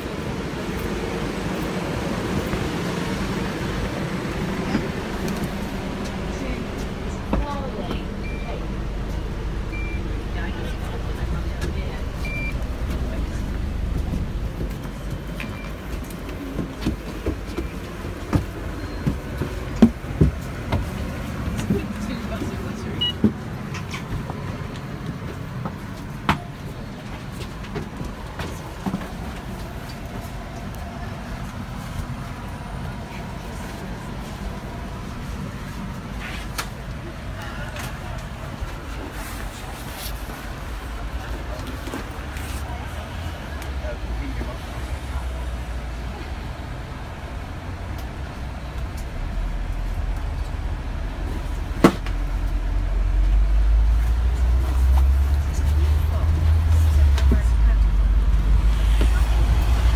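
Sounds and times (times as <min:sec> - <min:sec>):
bus engine and road rumble: 0:00.0 - 0:59.9.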